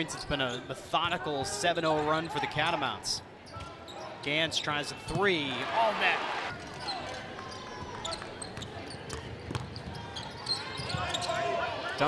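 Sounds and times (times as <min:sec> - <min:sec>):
ball dribbled on hardwood court: 0:08.6 - 0:10.0.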